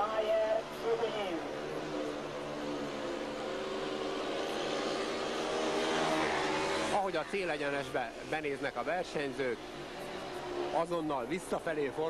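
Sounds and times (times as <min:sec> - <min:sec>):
motorcycle engines racing: 0:00.0 - 0:12.0.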